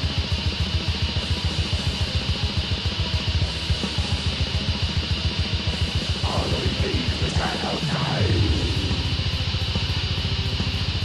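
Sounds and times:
black metal band playing: 0.0 - 11.0.

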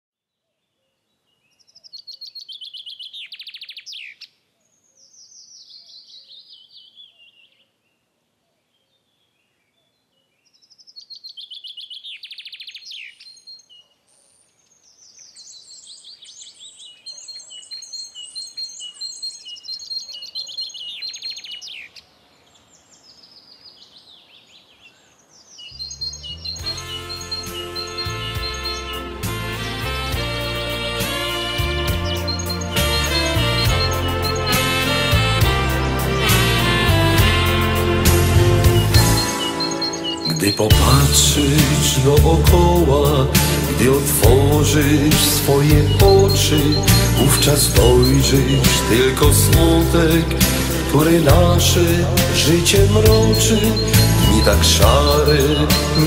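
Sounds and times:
songbird trilling: 24.9 - 29.0, 32.0 - 34.9, 38.7 - 42.8
slow hymn music: 26.2 - 56.0.

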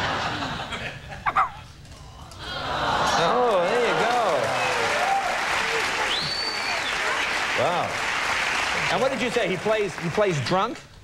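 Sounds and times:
audience applauding: 2.4 - 10.8.

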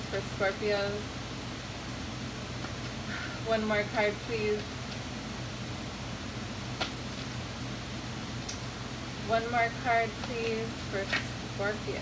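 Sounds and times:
room hum and hiss: 0.0 - 12.0.

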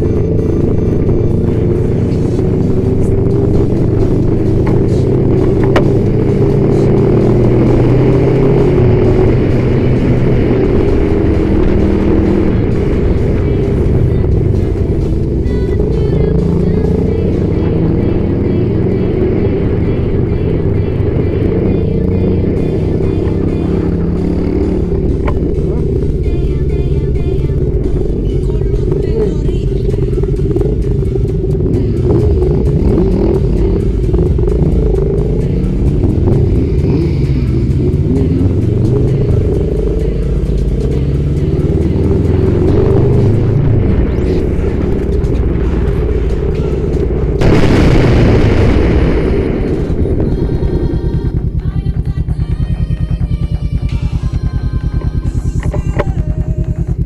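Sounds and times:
motorcycle engine running: 0.0 - 57.0
music playing: 0.0 - 57.0
wind rumble on microphone: 23.3 - 52.1.

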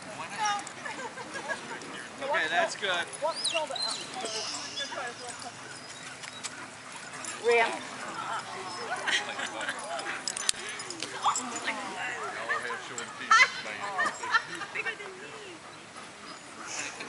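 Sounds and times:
people talking quietly: 0.0 - 17.0
dogs whimpering and yipping: 3.0 - 17.0.

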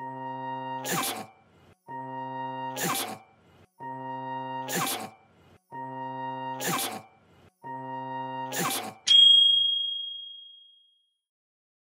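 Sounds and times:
bright bell-like ding: 9.1 - 10.8.

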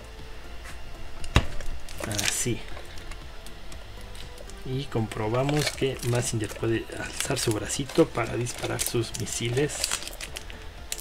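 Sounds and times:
handling plastic model parts: 1.3 - 11.0.

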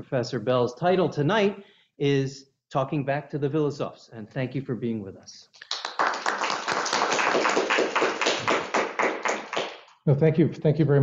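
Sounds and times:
audience applauding: 5.6 - 9.9.

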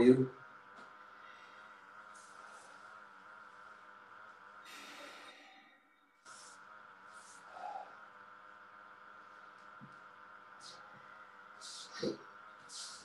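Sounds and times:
steady electrical hum: 0.0 - 13.0
faint breaths: 0.8 - 13.0.

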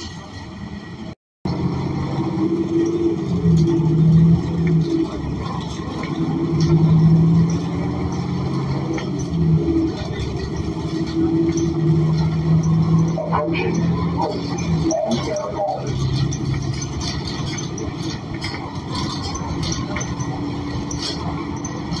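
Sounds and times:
bus engine drone: 0.0 - 22.0.

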